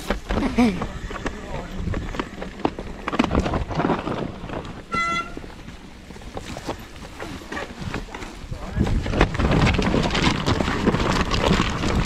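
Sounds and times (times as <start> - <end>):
bike rattling and knocking: 0.0 - 12.0
tyres rolling over leaves and stones: 0.0 - 12.0
wind on microphone: 0.0 - 12.0.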